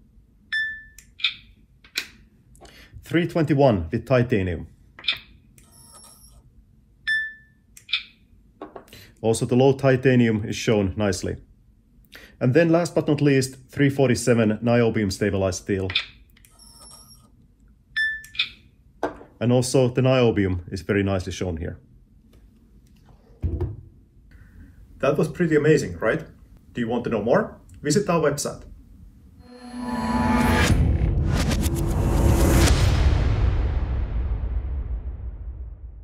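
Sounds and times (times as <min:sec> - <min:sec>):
electronic beep: 0:16.5 - 0:17.3.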